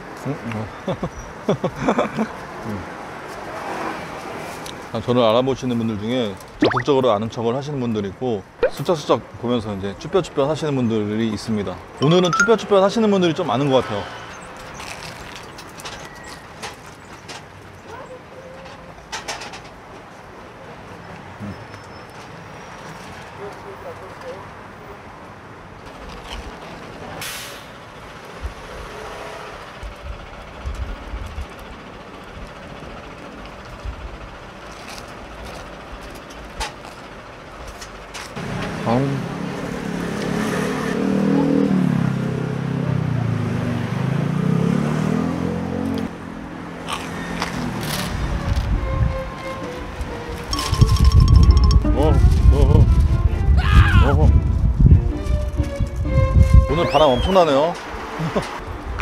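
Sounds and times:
street noise: 0:00.0 - 0:59.0
heavy vehicle engine: 0:26.9 - 0:37.5
wind buffeting microphone: 0:48.1 - 0:49.3, 0:50.0 - 0:57.3.

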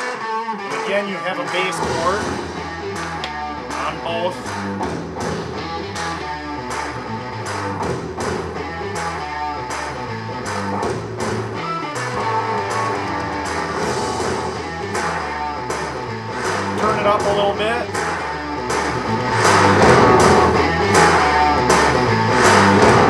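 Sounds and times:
guitar rock song over speakers: 0:00.0 - 0:23.0.

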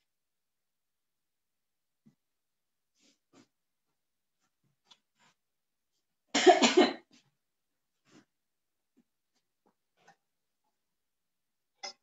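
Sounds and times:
person coughing: 0:06.4 - 0:07.1.

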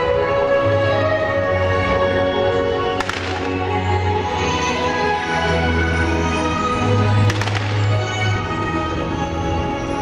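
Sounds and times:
firework cracks: 0:03.0 - 0:03.8, 0:07.2 - 0:08.1.

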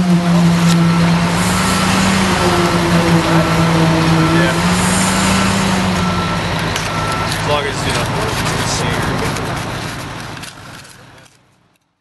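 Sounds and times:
vehicle engine running: 0:00.0 - 0:11.8
building site background noise: 0:00.0 - 0:12.0.

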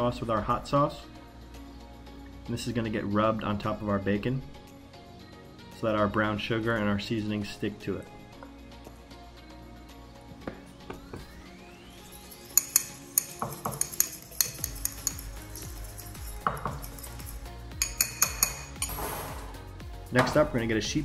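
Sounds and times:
background music: 0:00.0 - 0:21.0
fork clinking against glass bowl: 0:12.2 - 0:19.0.

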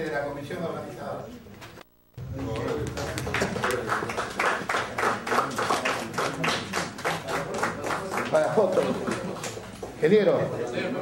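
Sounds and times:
audience applauding: 0:02.2 - 0:10.0.

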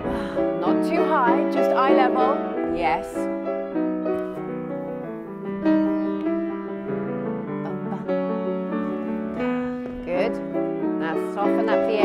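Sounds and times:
classical piano melody: 0:00.0 - 0:12.0.

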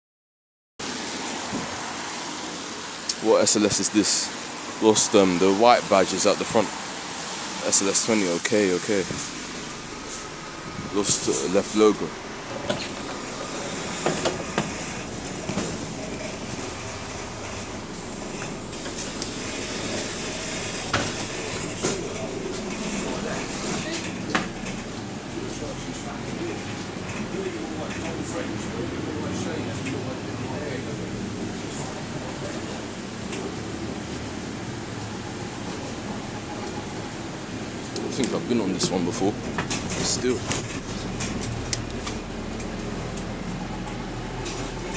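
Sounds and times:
bus engine running: 0:00.8 - 0:44.9
traffic hiss on a wet road: 0:00.8 - 0:44.9.

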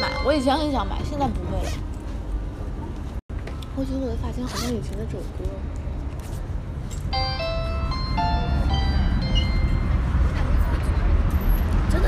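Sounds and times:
electronic chime melody: 0:00.0 - 0:00.8, 0:07.2 - 0:10.0
low rumble of traffic: 0:00.0 - 0:12.0.

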